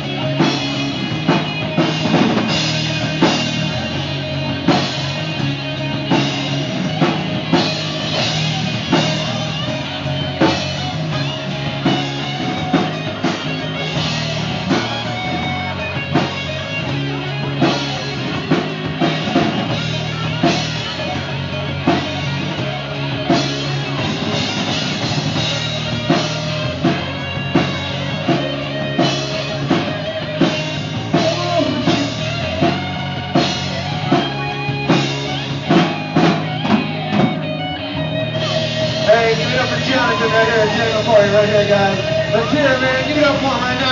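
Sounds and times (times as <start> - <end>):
drum kit steady beat: 0.0 - 43.9
electric bass: 0.0 - 43.9
electric guitars: 0.0 - 43.9.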